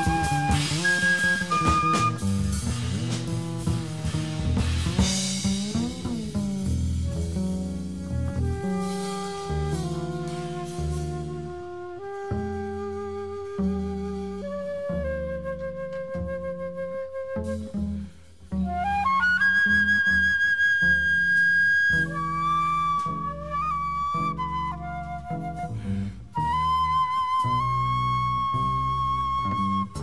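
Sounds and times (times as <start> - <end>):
flute holding long notes: 0.0 - 2.7, 8.0 - 18.0, 18.6 - 30.0
double bass lines: 0.0 - 30.0.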